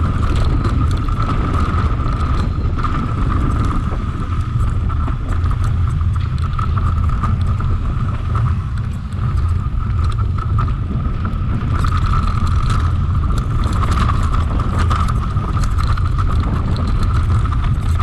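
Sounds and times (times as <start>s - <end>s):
bike and stones rattling: 0.0s - 18.0s
bike tyre noise on gravel: 0.0s - 18.0s
wind rumble on microphone: 0.0s - 18.0s.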